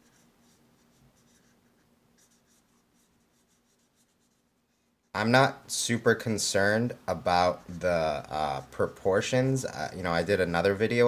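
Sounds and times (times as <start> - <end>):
marker scratching on paper: 0.0 - 4.9.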